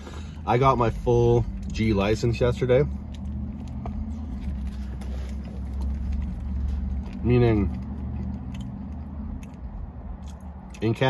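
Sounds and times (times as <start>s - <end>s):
car engine idling: 0.0s - 10.7s
person chewing food: 2.9s - 10.9s.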